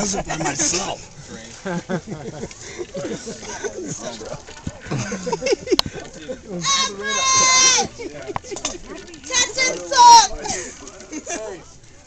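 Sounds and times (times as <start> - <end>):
people talking: 0.0 - 12.0.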